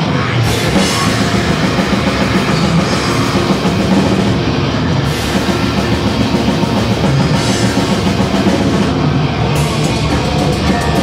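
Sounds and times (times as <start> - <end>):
distorted electric guitar: 0.0 - 11.0
drum kit with cymbals: 0.0 - 11.0.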